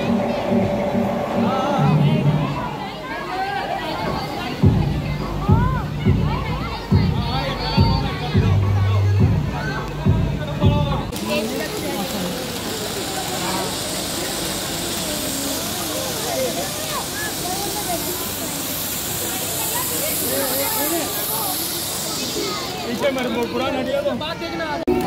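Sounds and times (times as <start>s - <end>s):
crowd voices: 0.0s - 25.0s
spark fountain hissing: 10.9s - 25.0s.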